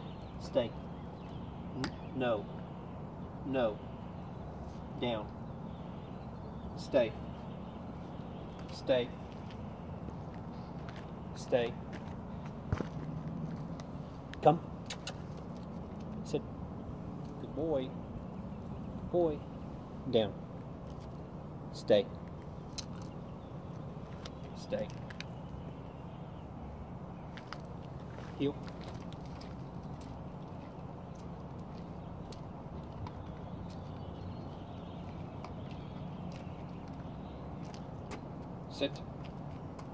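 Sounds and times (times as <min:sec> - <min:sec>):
footsteps on asphalt: 0:07.3 - 0:14.6, 0:22.3 - 0:25.8, 0:27.2 - 0:39.9.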